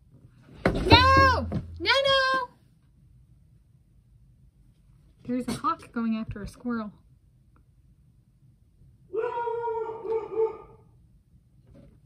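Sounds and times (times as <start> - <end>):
dog whining: 9.2 - 10.8.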